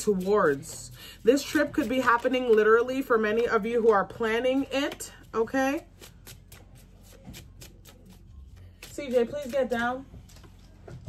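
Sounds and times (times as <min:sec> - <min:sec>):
cards being shuffled: 0:01.3 - 0:03.1, 0:04.9 - 0:10.8.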